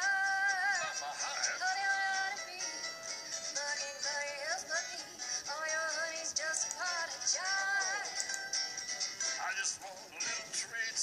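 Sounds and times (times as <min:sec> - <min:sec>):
children's song through laptop speakers: 0:00.0 - 0:11.0.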